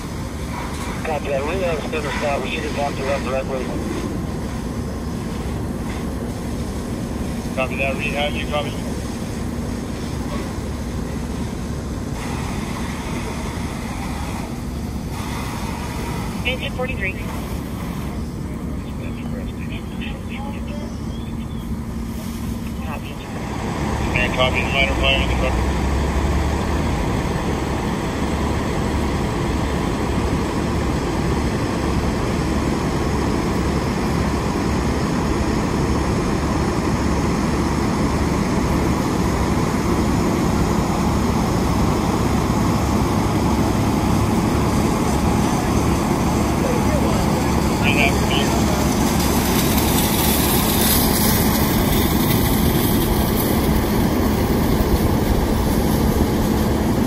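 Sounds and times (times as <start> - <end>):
idling engines drone: 0.0 - 57.0.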